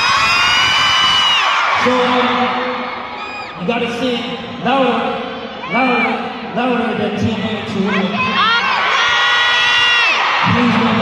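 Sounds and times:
crowd screaming and cheering: 0.0s - 6.8s, 7.4s - 11.0s.

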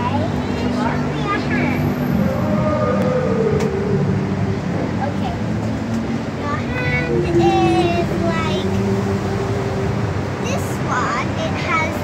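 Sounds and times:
child's voice: 0.0s - 1.8s, 6.4s - 9.0s, 10.4s - 12.0s.

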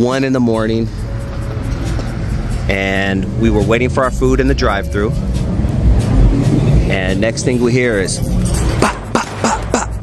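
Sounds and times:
vehicles passing: 0.0s - 10.0s
car engine running: 0.6s - 9.1s.

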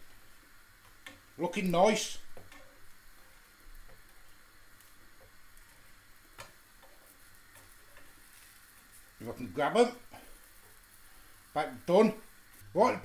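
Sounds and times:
faint frying sizzle: 0.0s - 13.0s.

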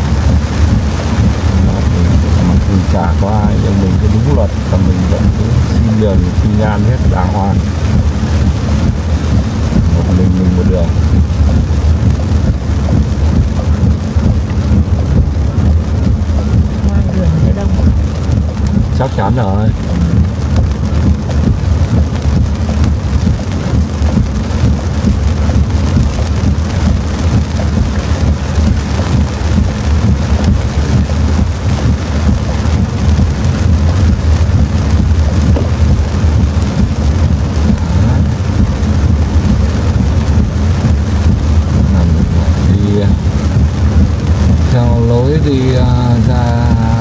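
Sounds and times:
heavy rain on car roof: 0.0s - 47.0s
tyre and engine noise: 0.0s - 47.0s.

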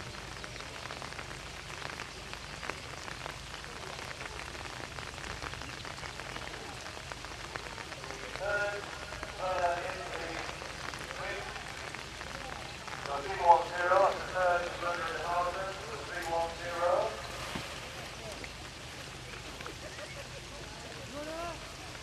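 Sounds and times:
light rain pattering: 0.0s - 22.0s.

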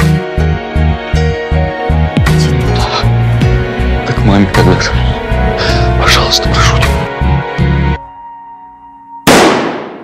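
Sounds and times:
handgun shot with echo: 9.3s - 10.0s.

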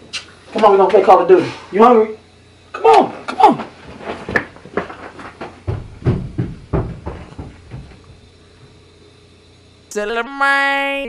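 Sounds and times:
hurried footsteps: 3.6s - 8.8s
heavy thumps: 4.0s - 8.8s.

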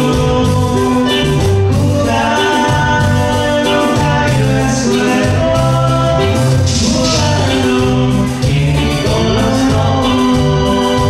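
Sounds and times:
electric bass notes: 0.0s - 11.0s
organ-like keyboard chords: 0.0s - 11.0s
person singing: 0.0s - 11.0s.

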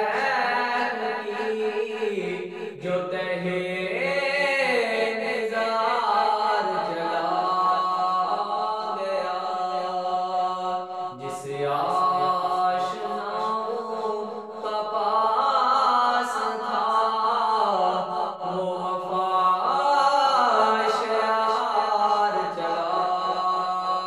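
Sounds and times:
man singing devotional song: 0.0s - 24.0s.

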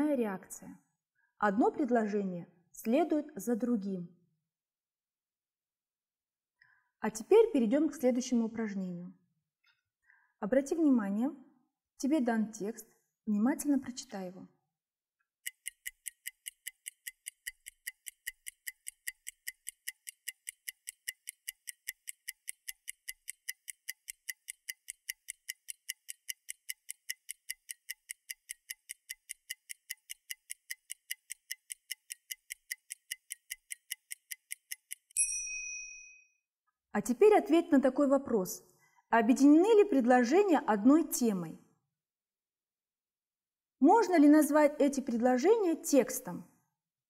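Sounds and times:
timer ticking: 15.4s - 35.4s
bell ding: 35.2s - 36.3s.

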